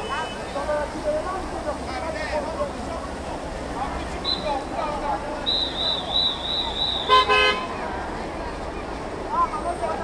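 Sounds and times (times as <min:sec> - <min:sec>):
high wavering whistle: 0:05.5 - 0:07.2.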